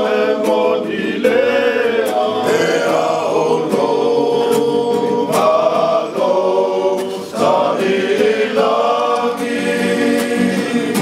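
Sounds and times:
acoustic guitar strumming: 0.0 - 11.0
men's choir singing in harmony: 0.0 - 11.0.

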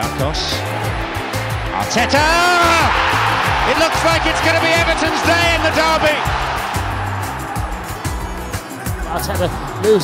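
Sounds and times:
stadium crowd roar: 0.6 - 8.7
music with bass beat: 2.8 - 9.1.

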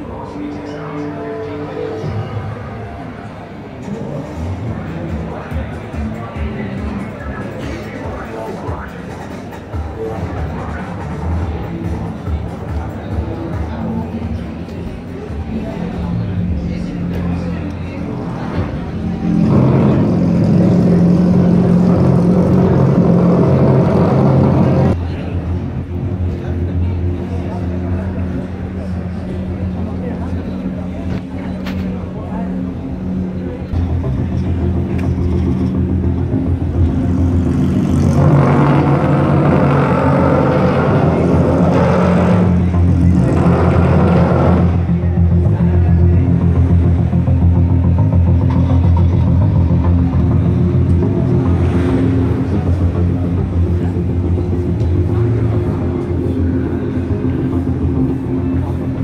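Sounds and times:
crowd voices and chatter: 0.0 - 59.0
low background music: 0.0 - 59.0.

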